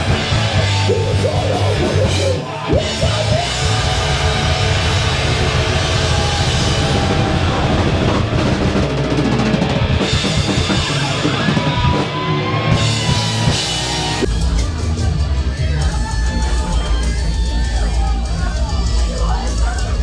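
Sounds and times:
drum kit: 0.0 - 20.0
heavy metal band playing: 0.0 - 20.0.

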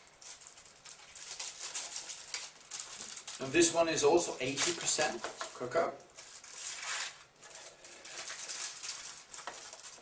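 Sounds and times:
wrapper crinkling and rustling: 0.0 - 10.0.

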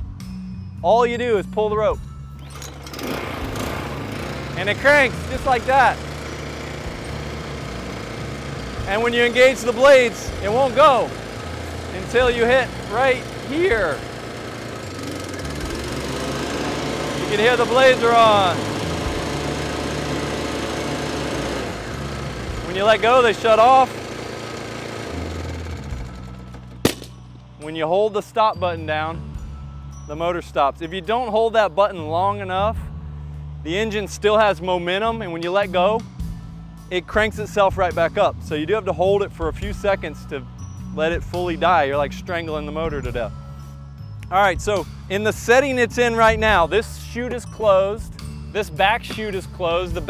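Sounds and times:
recoil rope pull: 2.4 - 27.0
small engine running: 2.4 - 27.2, 44.6 - 50.0.

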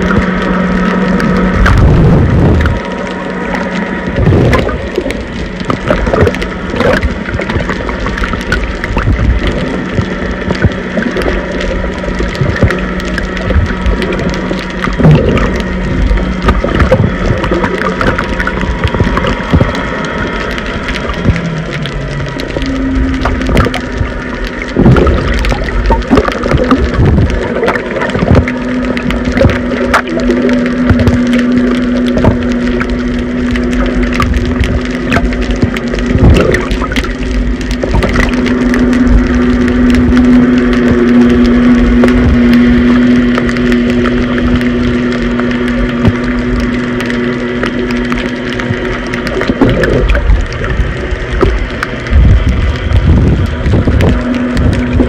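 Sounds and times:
muffled underwater water wash: 0.0 - 55.0
small clicks and crackles: 0.0 - 55.0
steady low hum: 0.0 - 55.0.

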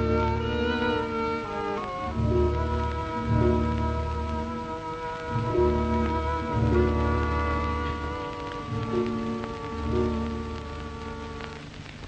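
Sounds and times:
soft orchestral music: 0.0 - 11.9
film soundtrack hiss and crackle: 0.0 - 12.0.

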